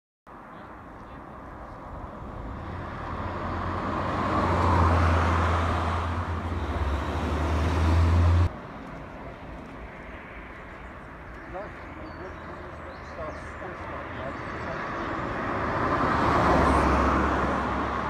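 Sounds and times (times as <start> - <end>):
distant traffic: 0.3 - 18.0
vehicles passing close by: 0.3 - 18.0.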